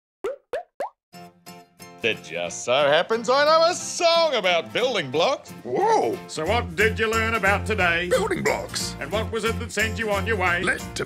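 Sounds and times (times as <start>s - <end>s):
rising popping sound effects: 0.2s - 1.0s.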